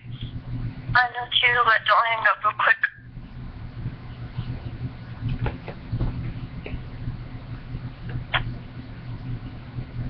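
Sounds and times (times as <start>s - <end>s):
low hum: 0.0s - 10.0s
girl speaking through phone speaker: 1.0s - 3.0s.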